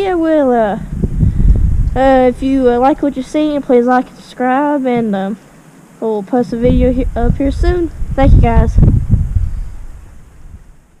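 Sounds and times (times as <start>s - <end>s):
wind buffeting microphone: 0.0s - 4.1s, 6.3s - 11.0s.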